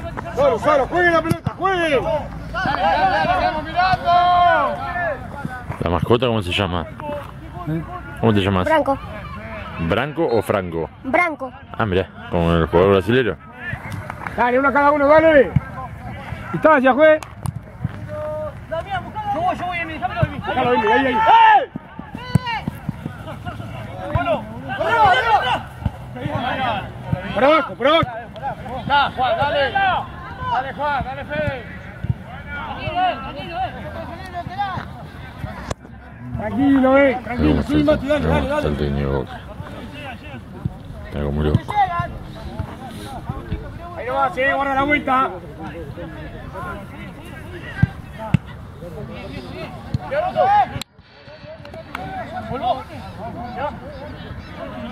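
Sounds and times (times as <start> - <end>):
people shouting calls: 0.0 - 5.5, 18.0 - 35.0.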